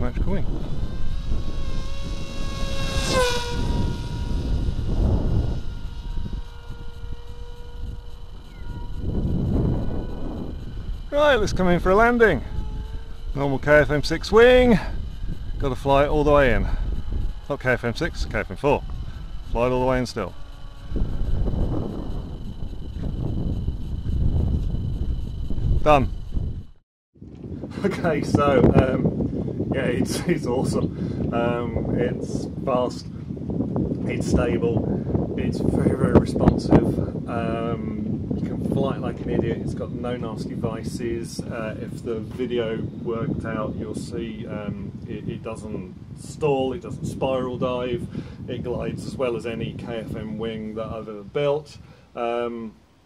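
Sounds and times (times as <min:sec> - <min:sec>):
low rumble: 0:00.0 - 0:27.5
wind buffeting microphone: 0:00.0 - 0:52.8
electric motor and propeller droning: 0:00.0 - 0:53.0
faint high whine: 0:00.0 - 0:53.0.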